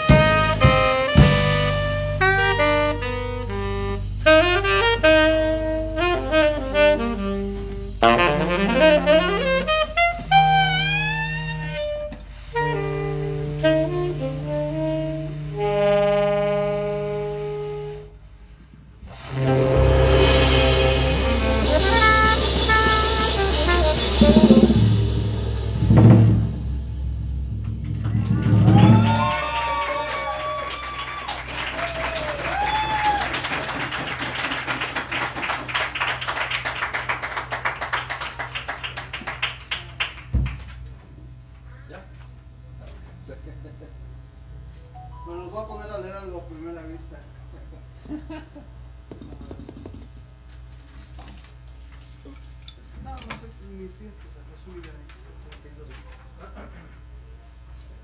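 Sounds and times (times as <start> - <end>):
drum kit: 0.0 - 15.8, 19.1 - 36.3
tenor saxophone: 0.0 - 26.0
electric bass: 0.0 - 30.2
cymbal strokes: 19.0 - 28.3.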